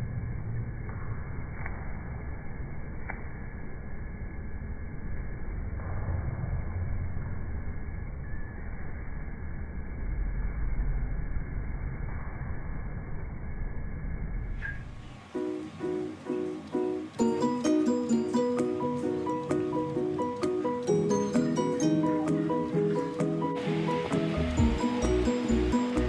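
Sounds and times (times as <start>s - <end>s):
dull low noise: 0.0s - 15.4s, 23.4s - 26.0s
plucked-string music: 15.4s - 26.0s.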